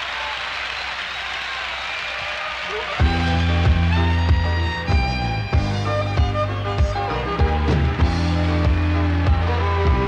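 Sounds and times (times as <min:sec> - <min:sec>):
audience applauding: 0:00.0 - 0:04.2, 0:06.4 - 0:10.0.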